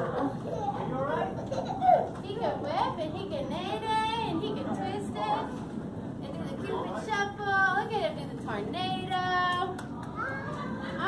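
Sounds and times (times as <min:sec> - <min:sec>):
large room noise: 0:00.0 - 0:11.0.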